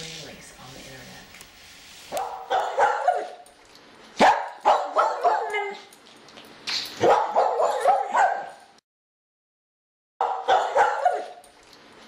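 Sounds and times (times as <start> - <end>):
dog barking and yipping: 2.1 - 3.5, 4.2 - 5.9, 6.9 - 8.7, 10.2 - 11.5.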